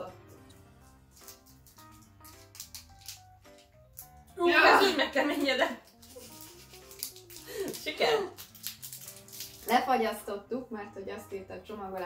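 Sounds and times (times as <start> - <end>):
quiet background music: 0.0 - 12.0
wrapper crinkling: 0.8 - 10.2.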